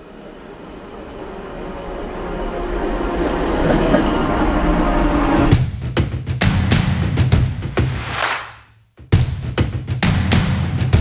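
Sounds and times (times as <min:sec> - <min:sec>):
subway train rumbling: 0:00.0 - 0:05.6.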